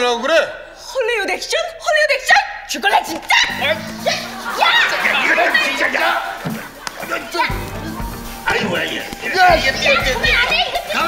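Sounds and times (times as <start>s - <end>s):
people yelling and scuffling: 3.0s - 11.0s
background music with bass: 3.5s - 11.0s.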